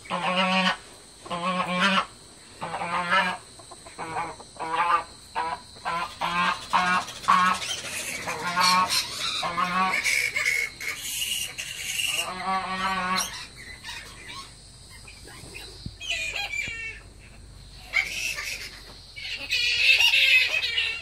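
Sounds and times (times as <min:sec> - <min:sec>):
fowl calling: 0:00.0 - 0:21.0
fowl squeals: 0:04.0 - 0:21.0.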